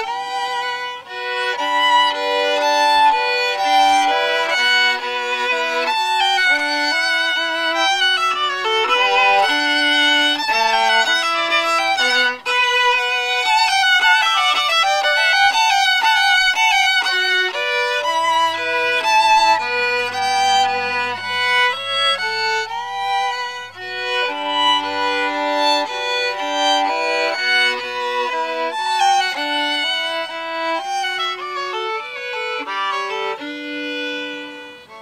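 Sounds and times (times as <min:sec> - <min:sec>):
two fiddles playing a duet: 0:00.0 - 0:35.0.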